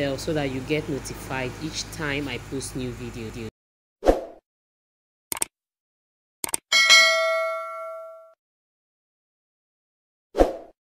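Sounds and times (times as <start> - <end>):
notification bell ding: 6.7 - 8.4.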